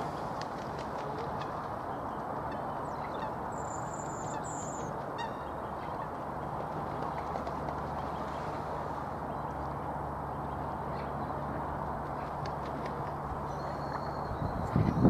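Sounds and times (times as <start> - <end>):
waterfowl calling: 0.0 - 9.7
open-air background hiss: 0.0 - 15.0.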